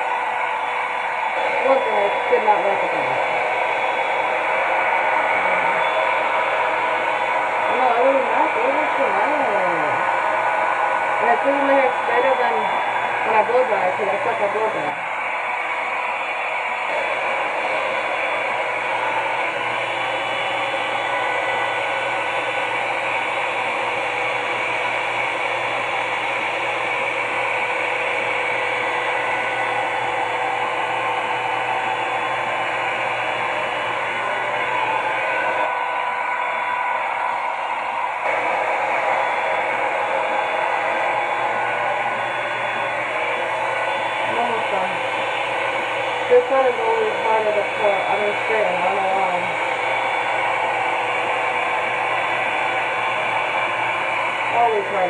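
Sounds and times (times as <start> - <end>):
hair dryer brush blowing: 0.0 - 55.0.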